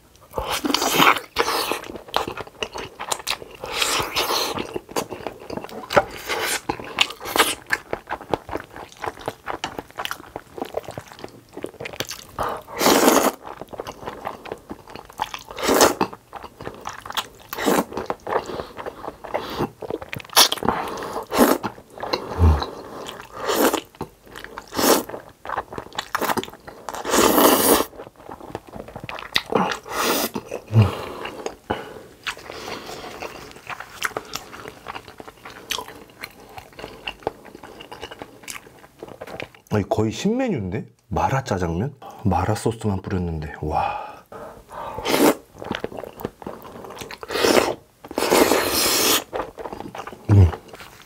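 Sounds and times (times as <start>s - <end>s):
chewing: 0.2s - 39.7s, 44.3s - 51.0s
noodles being slurped: 3.0s - 31.4s, 44.9s - 51.0s
loud noodle slurps: 12.6s - 13.4s, 20.4s - 21.6s, 22.3s - 23.9s, 24.7s - 25.2s, 27.0s - 27.9s, 29.8s - 30.4s, 44.9s - 45.5s, 47.2s - 49.3s.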